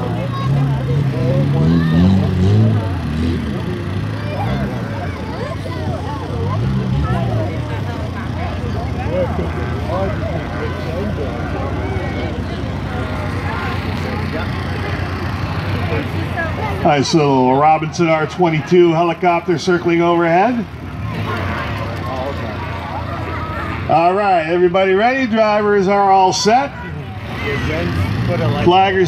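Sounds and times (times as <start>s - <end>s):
car engines revving: 0.0s - 29.0s
spectators chatting: 0.0s - 29.0s.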